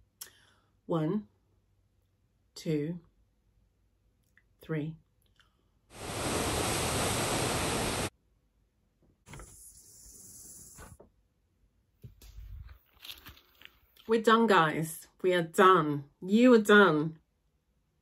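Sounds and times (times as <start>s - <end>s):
rush of air on microphone: 5.9s - 8.1s.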